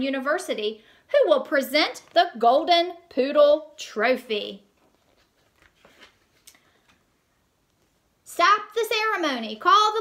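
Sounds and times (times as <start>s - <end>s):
book pages turning: 4.8s - 7.1s.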